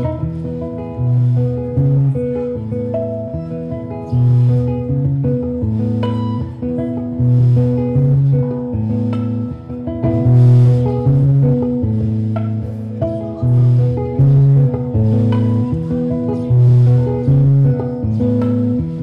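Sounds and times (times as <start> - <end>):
electric guitar picking chords: 0.0 - 19.0.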